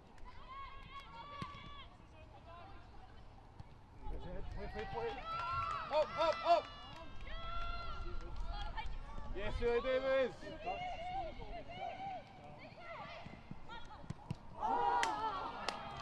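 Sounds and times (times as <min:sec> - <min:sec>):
footballers shouting: 0:04.7 - 0:08.1, 0:09.5 - 0:16.0.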